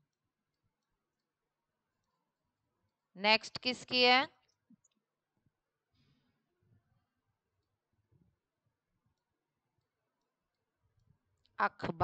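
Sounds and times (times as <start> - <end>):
woman speaking: 3.2 - 4.3, 11.6 - 12.0.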